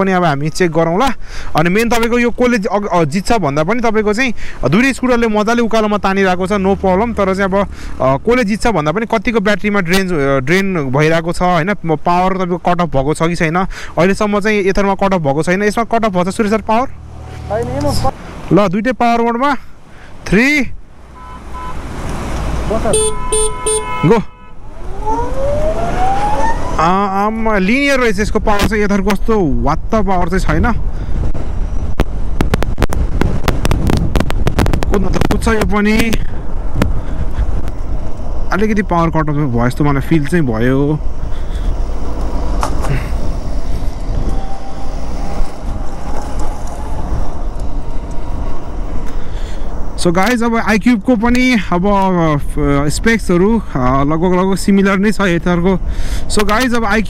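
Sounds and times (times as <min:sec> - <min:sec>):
vehicle horn tooting: 0:21.1 - 0:21.9, 0:22.8 - 0:24.6
wind buffeting microphone: 0:28.3 - 0:50.0.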